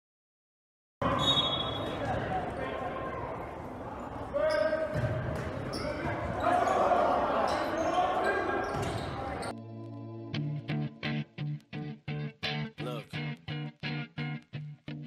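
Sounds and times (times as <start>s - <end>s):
players and spectators shouting: 1.0s - 9.5s.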